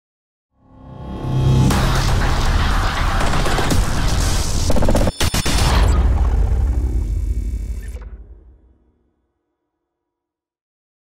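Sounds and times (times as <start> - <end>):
cinematic swell with deep rumble: 0.6 - 4.4.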